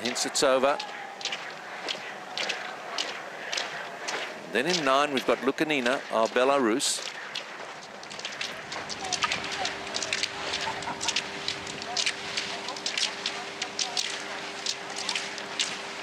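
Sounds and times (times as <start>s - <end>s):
ski poles clicking and crunching: 0.0s - 15.9s
faint steady hum: 0.0s - 16.0s
skis scraping on snow: 1.4s - 15.9s.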